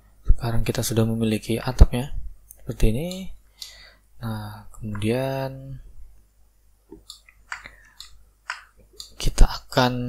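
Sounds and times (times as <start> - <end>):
soft clicks: 6.9 - 9.2.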